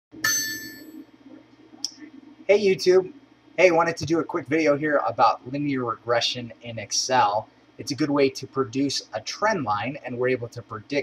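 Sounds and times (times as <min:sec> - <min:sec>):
low steady hum: 0:00.1 - 0:11.0
bright bell-like ding: 0:00.2 - 0:01.0.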